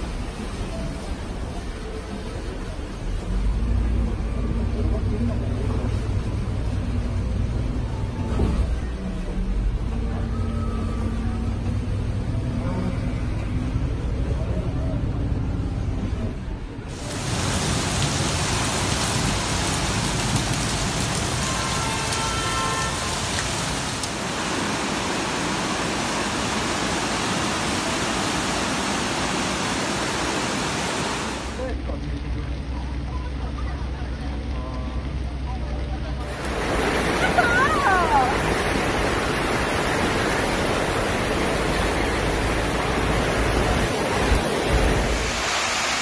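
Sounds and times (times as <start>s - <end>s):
floodwater rushing across street: 0.0s - 16.1s, 16.8s - 46.0s.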